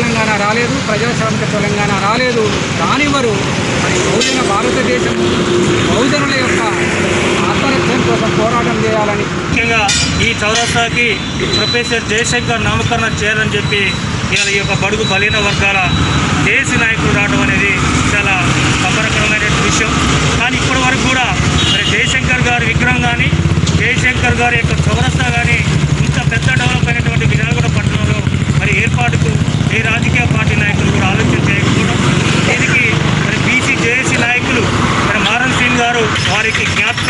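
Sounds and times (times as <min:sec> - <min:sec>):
man speaking: 0:00.0 - 0:37.0
vehicle engine idling: 0:11.9 - 0:32.0.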